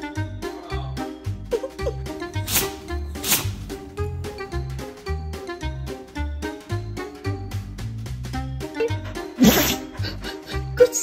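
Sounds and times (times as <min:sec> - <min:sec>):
music with steady bass beat: 0:00.1 - 0:09.7
dog fake sneezes: 0:09.4 - 0:10.0.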